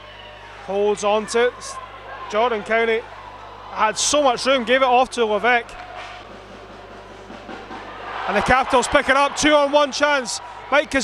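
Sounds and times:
ice hockey arena background noise: 0.0 - 11.0.

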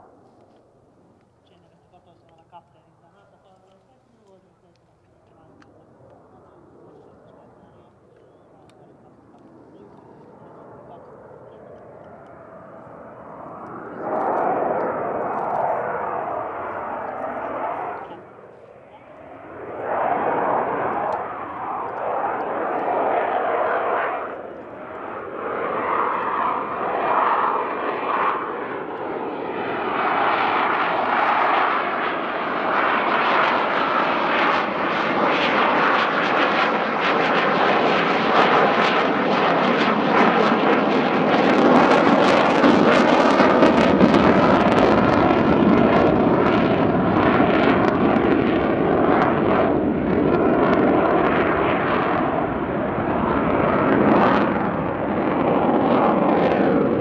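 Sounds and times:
jet engines roaring: 0.0 - 57.0.

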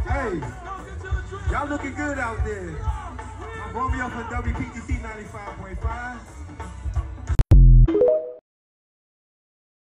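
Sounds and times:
electronic jingle tones: 7.6 - 8.4.

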